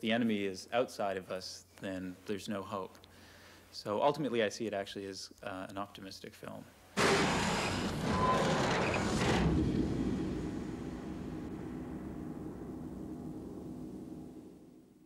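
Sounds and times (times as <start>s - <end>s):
rush of noise into rumble: 7.0s - 14.9s.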